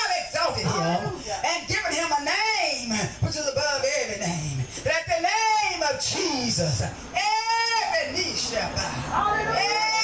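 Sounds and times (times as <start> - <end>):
woman's voice through microphone: 9.0 - 10.0.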